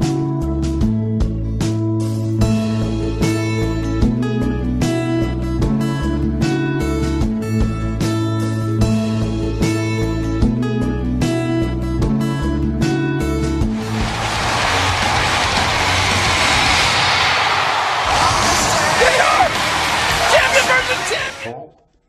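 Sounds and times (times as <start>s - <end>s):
dense roar of noise: 13.8s - 20.6s
voices: 18.0s - 21.6s.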